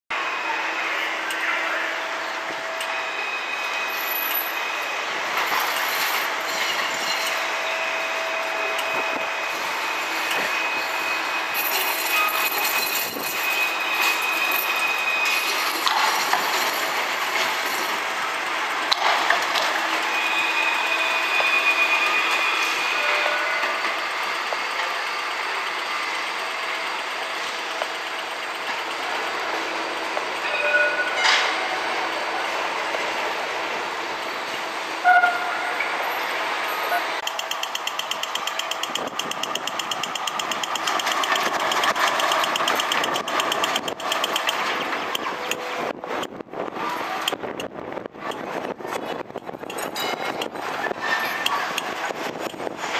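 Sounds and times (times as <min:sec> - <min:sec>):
traffic noise: 0:00.1 - 0:52.9
tram running on track: 0:00.1 - 0:52.9
high wheel squeals: 0:00.2 - 0:17.7, 0:19.8 - 0:27.6, 0:29.6 - 0:31.9, 0:49.6 - 0:52.0.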